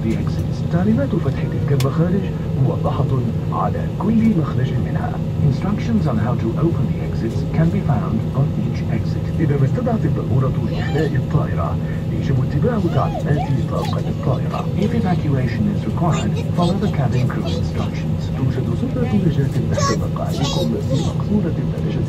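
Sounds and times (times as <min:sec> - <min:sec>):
airliner cabin hum: 0:00.0 - 0:22.0
voices talking: 0:02.6 - 0:22.0.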